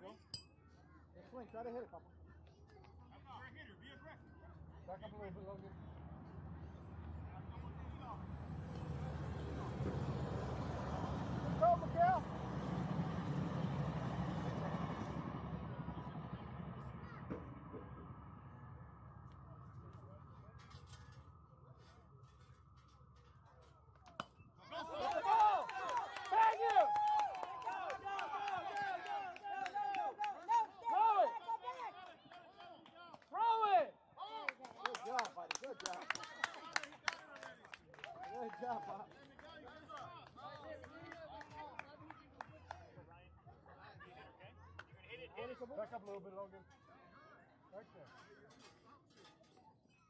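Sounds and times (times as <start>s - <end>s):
crowd shouting and cheering: 24.1s - 35.2s, 37.9s - 42.8s.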